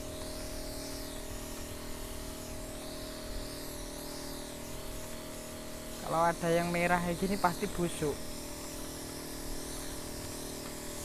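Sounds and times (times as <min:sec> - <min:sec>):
small motor humming: 0:00.0 - 0:11.0.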